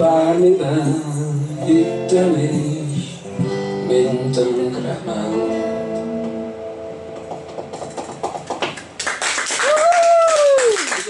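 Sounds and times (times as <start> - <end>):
audience clapping: 7.3 - 11.0
person whooping: 9.6 - 11.0.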